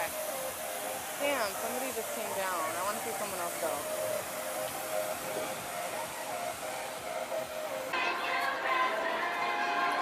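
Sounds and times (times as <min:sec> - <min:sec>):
faint music: 0:00.0 - 0:10.0
fountain rushing: 0:00.0 - 0:10.0.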